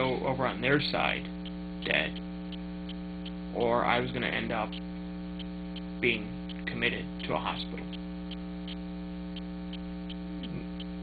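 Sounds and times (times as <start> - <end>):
electrical mains hum: 0.0 - 11.0
faint regular ticks: 0.0 - 11.0.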